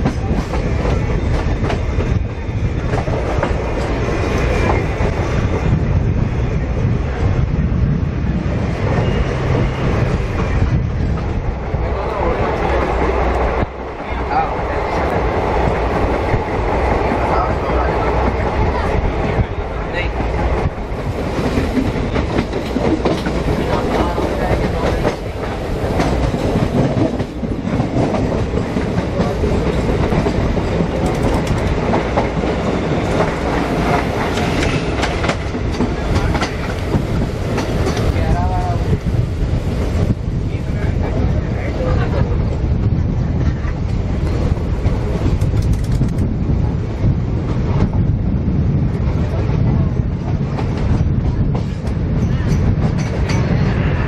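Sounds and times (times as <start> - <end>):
train wheels rumbling on rail: 0.0 - 54.0
wheels clacking over rail joints: 21.3 - 38.7.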